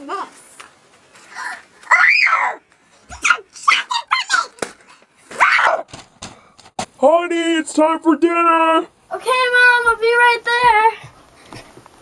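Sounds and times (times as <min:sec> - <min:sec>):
child shrieking and yelling: 0:01.4 - 0:04.5, 0:05.3 - 0:05.9.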